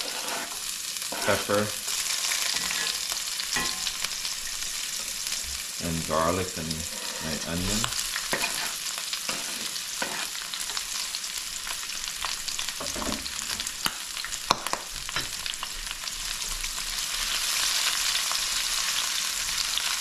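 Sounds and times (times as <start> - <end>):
spatula stirring in pan: 0.0 - 5.4, 6.7 - 11.1
vegetables sizzling in hot oil: 0.0 - 20.0.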